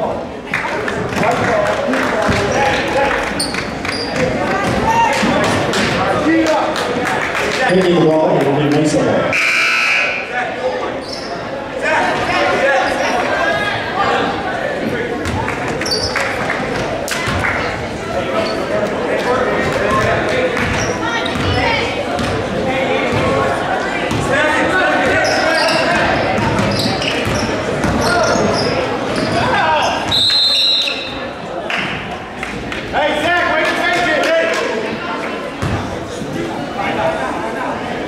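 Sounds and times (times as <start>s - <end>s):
spectators' voices echoing: 0.0s - 38.0s
referee's whistle: 9.3s - 10.3s, 30.1s - 31.2s
basketball dribbling: 25.0s - 28.6s.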